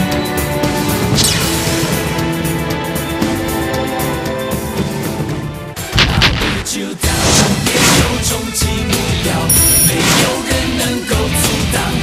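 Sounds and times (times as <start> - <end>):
music: 0.0 - 12.0.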